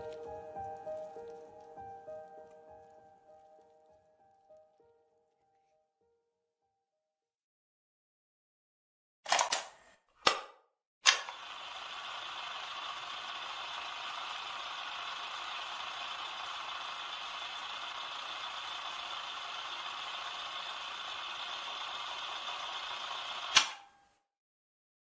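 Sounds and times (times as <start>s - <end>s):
sharp click: 23.5s - 23.9s.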